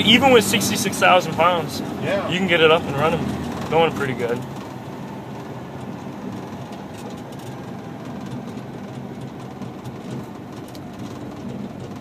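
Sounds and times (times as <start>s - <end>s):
road noise: 0.0s - 12.0s
truck engine running: 0.0s - 12.0s
faint clicks and rattles: 3.2s - 12.0s.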